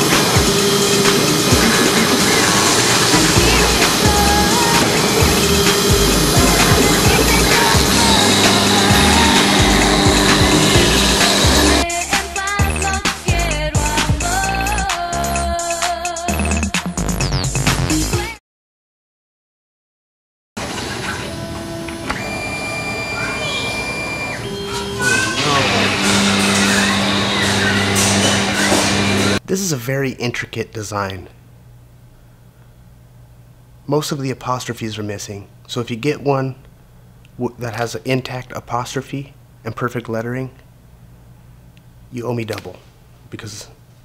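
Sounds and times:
low drone: 0.0s - 11.8s
router spindle whining: 0.0s - 11.8s, 21.1s - 29.4s
music with steady bass beat: 3.0s - 18.4s.

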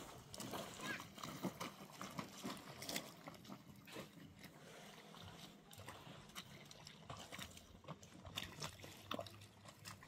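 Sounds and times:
feet squelching in water: 0.0s - 10.0s.

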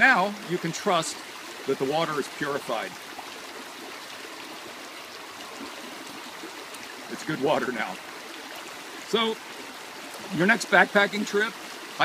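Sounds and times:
creek water flowing: 0.0s - 12.0s.

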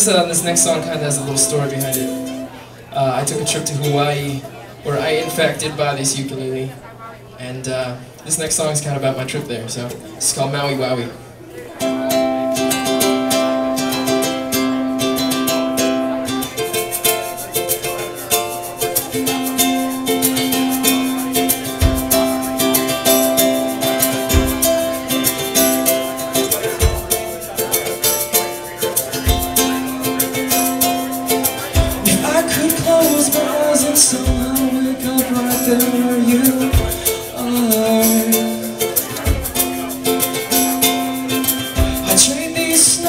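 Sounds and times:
strummed ukulele: 0.0s - 6.2s, 11.7s - 43.0s
low beat thump: 21.8s - 22.5s, 24.2s - 25.9s, 26.7s - 27.3s, 29.2s - 29.8s, 31.8s - 38.4s, 39.2s - 39.8s, 41.8s - 42.4s.

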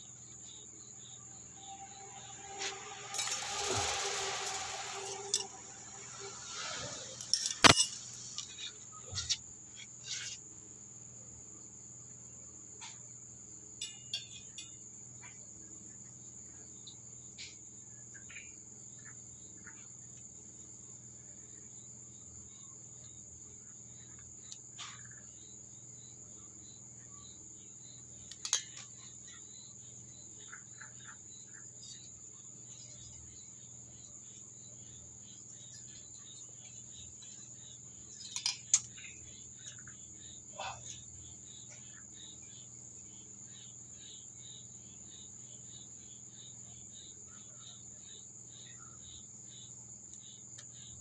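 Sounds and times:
crickets chirring: 0.0s - 51.0s.

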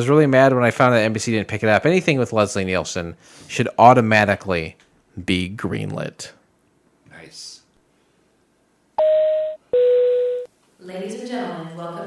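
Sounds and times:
two-tone cabin chime: 9.0s - 10.5s.

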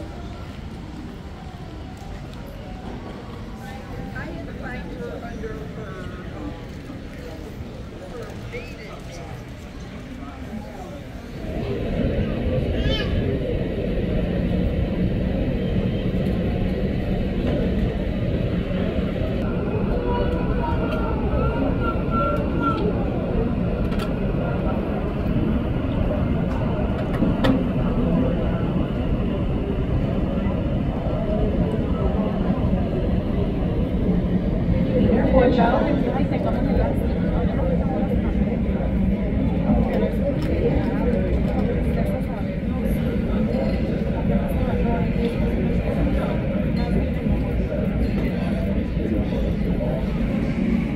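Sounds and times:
indistinct background voices: 0.0s - 50.9s
jet engines running: 0.0s - 50.9s.

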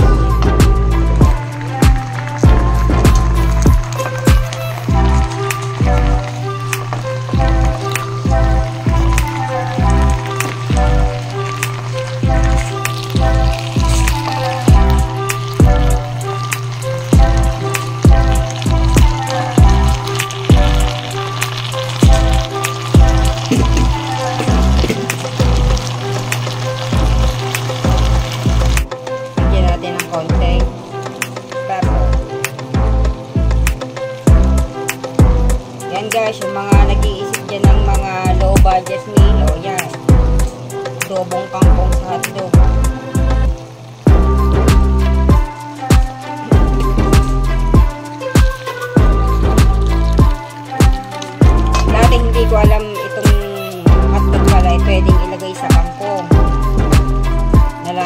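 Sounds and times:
background music with bass beat: 0.0s - 21.3s, 21.9s - 25.9s, 32.0s - 35.8s, 42.6s - 57.9s
food sizzling in a pan: 0.0s - 58.0s.

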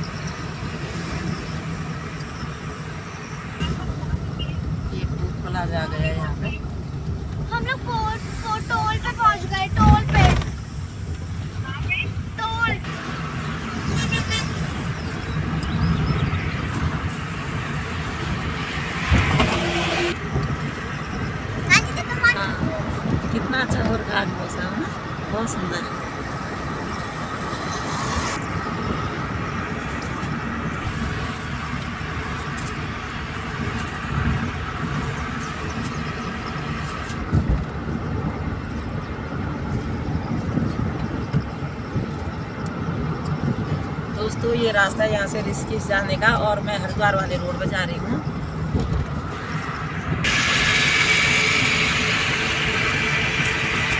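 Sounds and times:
car road and engine noise: 0.0s - 53.9s.

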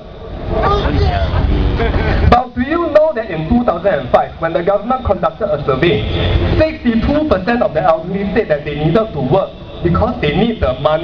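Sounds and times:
steady low rumble: 0.0s - 11.0s
man speaking: 2.2s - 11.0s.

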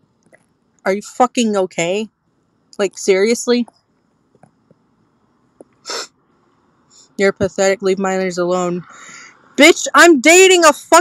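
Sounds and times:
person speaking: 0.9s - 2.1s, 2.8s - 3.7s, 7.2s - 11.0s
sharp burst of breath: 5.8s - 6.1s, 8.9s - 9.6s
faint breath in: 8.8s - 9.6s.

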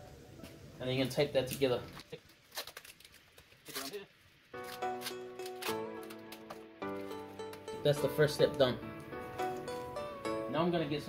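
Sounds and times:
plastic bag crinkling: 1.4s - 6.6s
packing tape rasping: 1.5s - 6.7s
background music: 4.5s - 11.0s.

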